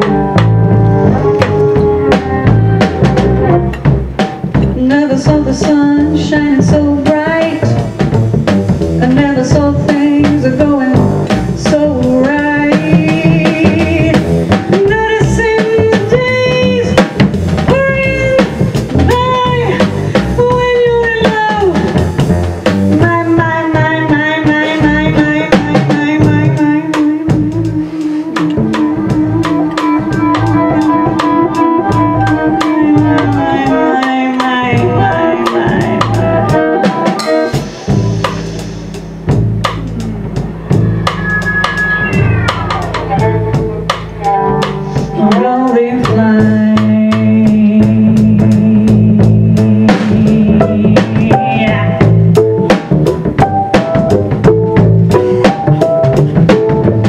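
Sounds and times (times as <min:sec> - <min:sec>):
violin melody: 0:00.0 - 0:04.8, 0:27.6 - 0:34.2, 0:39.7 - 0:45.6
drums with rimshots: 0:00.0 - 0:57.0
walking upright bass: 0:00.0 - 0:57.0.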